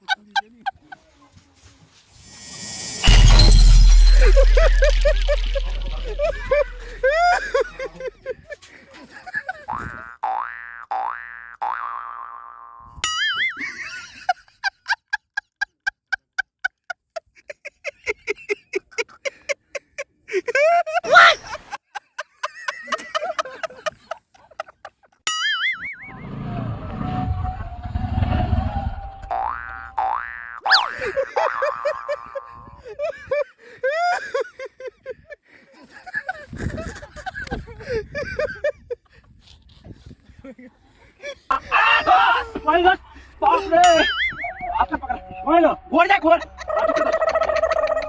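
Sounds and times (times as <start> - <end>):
cartoon boing sound effect: 10.2 - 12.8, 29.3 - 30.9.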